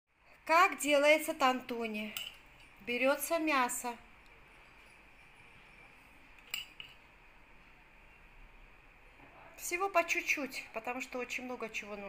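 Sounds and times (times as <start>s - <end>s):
metal spoon clinking on china plate: 2.1s - 2.8s, 4.7s - 7.1s.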